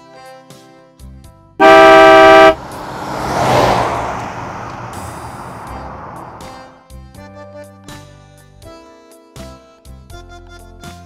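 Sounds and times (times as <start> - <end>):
car horn honking: 1.6 - 4.2
vehicle rushing past: 1.6 - 6.8.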